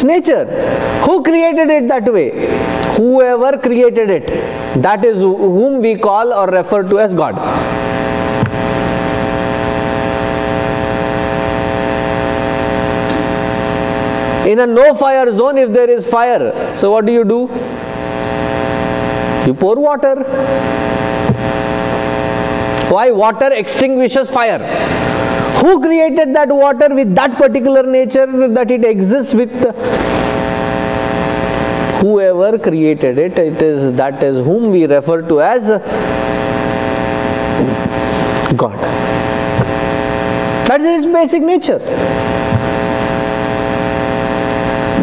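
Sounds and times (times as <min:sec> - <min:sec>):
electrical hum with hiss: 0:00.0 - 0:45.0.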